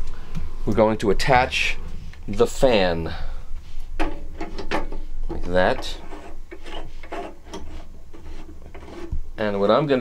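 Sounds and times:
plastic rubbing and scraping: 4.4 - 9.3.

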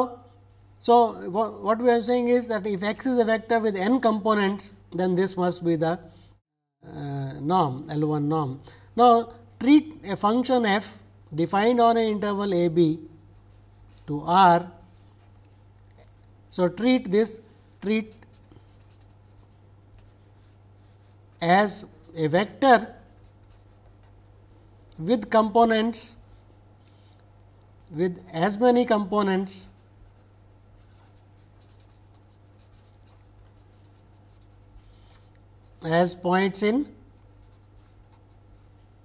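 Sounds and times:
steady low hum: 0.0 - 39.0
marker pen scratching on paper: 13.4 - 14.3, 18.0 - 24.3, 29.4 - 35.9, 37.1 - 39.0.

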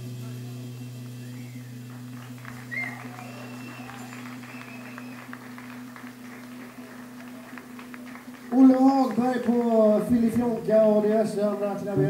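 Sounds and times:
faint electric guitar notes: 0.0 - 12.0
low amplifier hum: 0.0 - 12.0.

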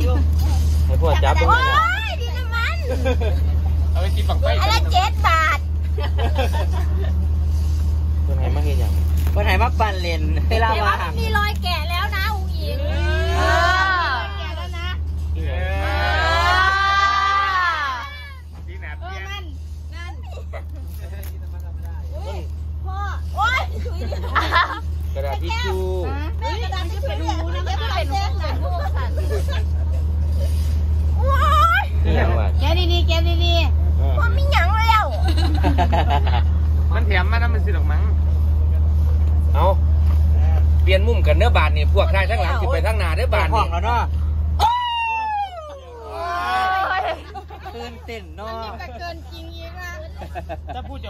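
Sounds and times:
steady low rumble: 0.0 - 51.0
women chatting: 1.3 - 3.2, 4.4 - 5.8, 11.1 - 15.1, 22.2 - 24.7, 26.2 - 29.8, 31.2 - 32.0, 32.6 - 35.4, 45.4 - 47.9, 48.5 - 50.6.

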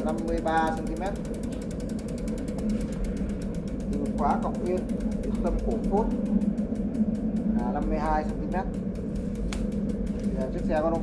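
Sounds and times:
bike freewheel hub ticking: 0.0 - 11.0.

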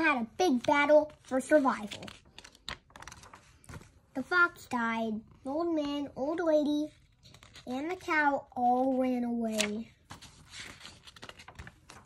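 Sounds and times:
paper page turning: 0.5 - 4.0, 6.9 - 8.0, 8.9 - 12.0.

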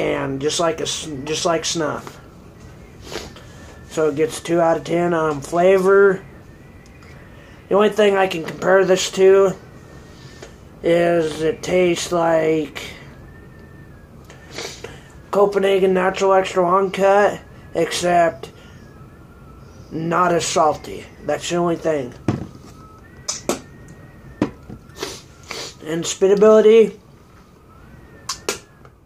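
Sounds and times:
faint thin whine: 0.0 - 29.0
short breath: 3.0 - 3.8, 7.2 - 7.6, 9.9 - 10.7, 14.3 - 15.2
short sharp clicks: 23.3 - 23.7.

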